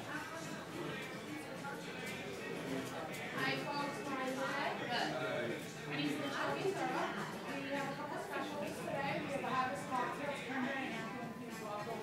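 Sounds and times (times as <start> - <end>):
voices talking in a restaurant: 0.0 - 12.0.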